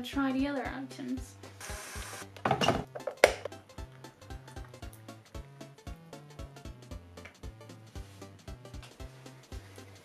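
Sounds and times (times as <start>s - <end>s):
background music with steady beat: 0.0s - 10.0s.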